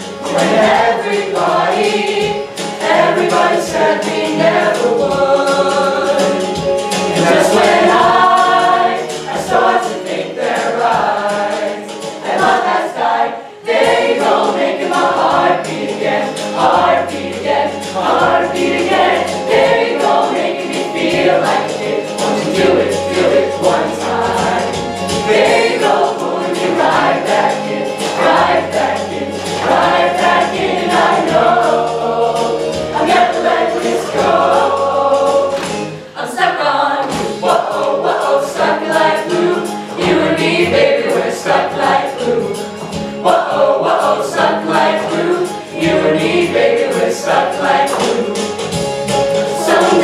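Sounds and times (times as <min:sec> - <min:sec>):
choir singing upbeat song: 0:00.0 - 0:50.0.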